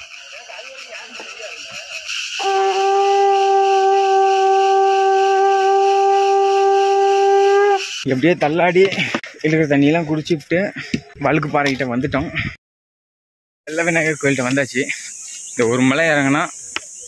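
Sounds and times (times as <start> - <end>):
hand-held horn long note: 2.4 - 7.9.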